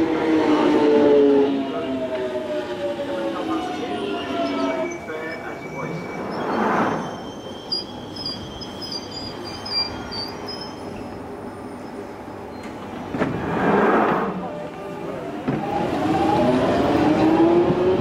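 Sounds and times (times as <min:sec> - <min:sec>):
faint wheel squeal: 0:04.4 - 0:12.7.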